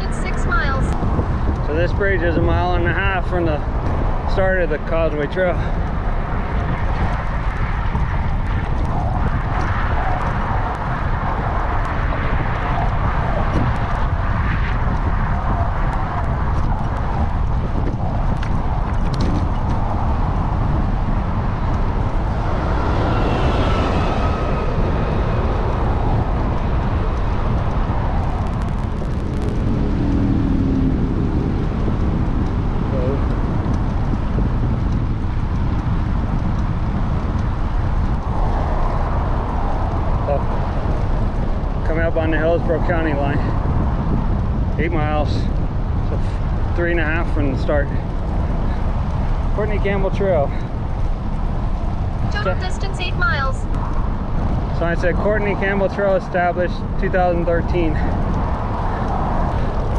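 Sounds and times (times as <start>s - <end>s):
road traffic: 0.0s - 59.9s
wind buffeting microphone: 0.0s - 59.9s.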